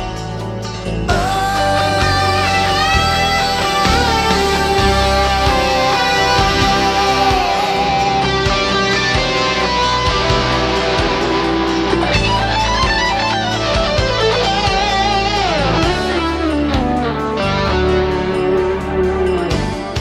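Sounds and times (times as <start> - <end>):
band backing: 0.0 - 20.0
electric guitar lead: 0.0 - 20.0
steady drum beat: 1.1 - 20.0.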